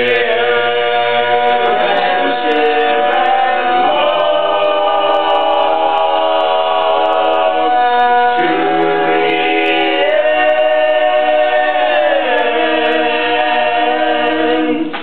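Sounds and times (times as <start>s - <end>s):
boys singing close harmony: 0.0s - 15.0s.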